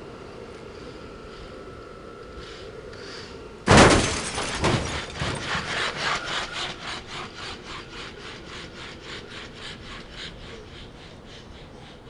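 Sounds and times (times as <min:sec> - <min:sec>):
rhythmic rasping scrape: 0:04.1 - 0:11.9.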